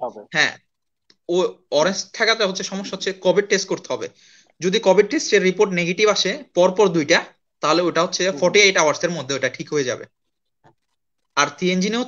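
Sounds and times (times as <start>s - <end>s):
person speaking over video call: 0.0s - 12.0s.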